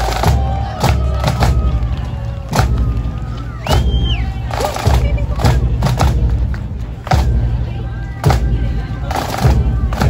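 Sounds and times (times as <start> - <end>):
crowd voices: 0.0 - 10.0
snare and bass drums playing: 2.5 - 7.6, 8.2 - 10.0.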